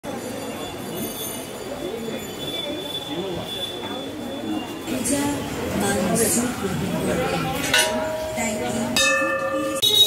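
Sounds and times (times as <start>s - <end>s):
indistinct voices: 1.6s - 10.0s.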